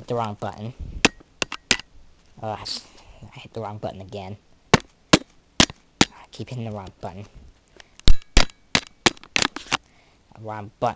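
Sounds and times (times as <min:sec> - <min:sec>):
camera handling clicks and knocks: 0:07.8 - 0:09.8.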